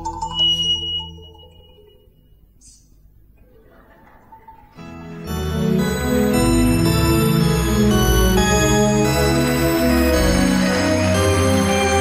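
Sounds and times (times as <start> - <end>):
bright bell-like tone: 0.0 - 2.4.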